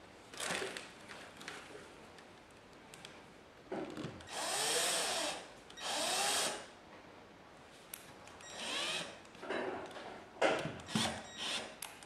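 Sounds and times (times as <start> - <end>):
cordless drill motor whine: 4.3 - 6.6, 8.5 - 9.1.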